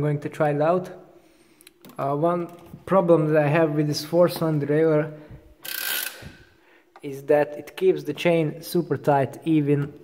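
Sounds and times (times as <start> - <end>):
bicycle chain whirring: 5.6 - 6.4.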